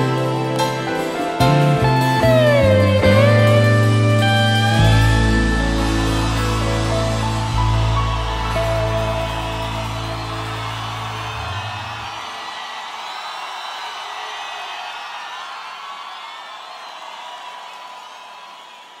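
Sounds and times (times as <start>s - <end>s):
large crowd cheering: 0.0s - 19.0s
band chord ringing out: 1.4s - 12.0s.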